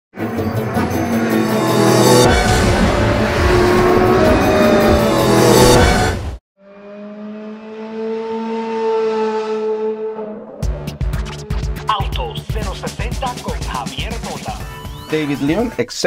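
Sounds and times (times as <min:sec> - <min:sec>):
music: 0:00.2 - 0:06.2, 0:10.6 - 0:16.0
held drone rising in pitch: 0:00.2 - 0:11.8
car engine revving: 0:00.2 - 0:11.9.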